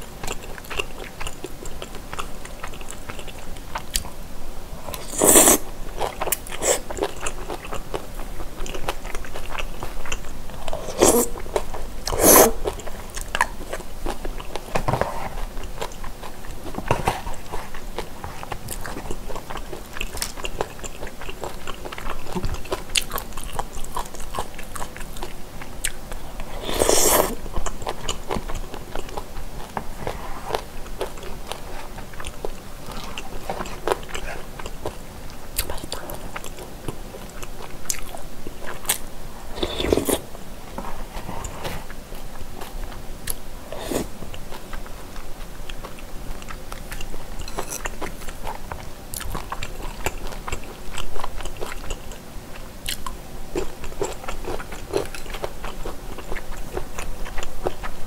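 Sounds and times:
wet chewing sounds: 0:00.0 - 0:04.2, 0:04.9 - 0:58.0
slurp: 0:04.9 - 0:05.6, 0:10.7 - 0:11.4, 0:12.1 - 0:12.6, 0:26.5 - 0:27.4, 0:39.6 - 0:40.2.

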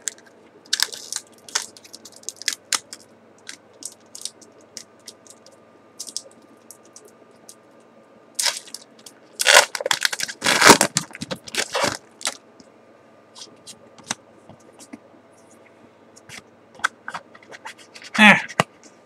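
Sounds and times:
foil pack tearing: 0:00.0 - 0:04.3, 0:08.4 - 0:12.4
foil wrapper crinkling: 0:00.0 - 0:07.1, 0:08.4 - 0:12.4.

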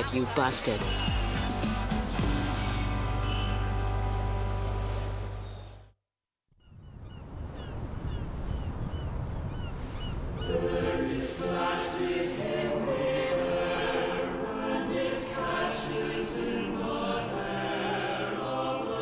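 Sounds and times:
choir singing held notes: 0:10.4 - 0:19.0.

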